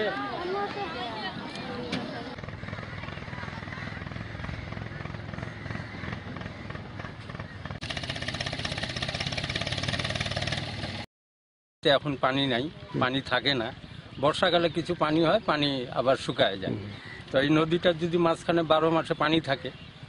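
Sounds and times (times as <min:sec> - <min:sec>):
faint voices: 0:00.0 - 0:05.9
engine running with rhythmic pulse: 0:01.8 - 0:11.0.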